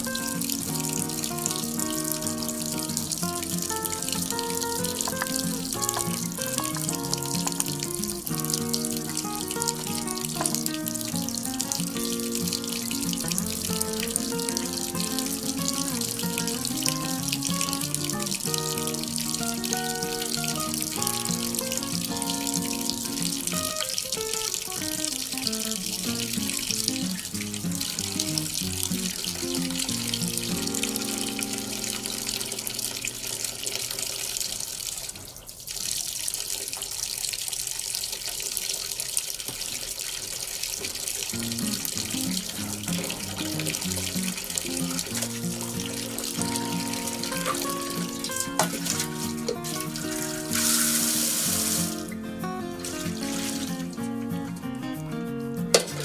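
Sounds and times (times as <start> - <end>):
background music: 0.0 - 24.0, 41.8 - 56.0
water pouring into a basin: 0.0 - 54.0.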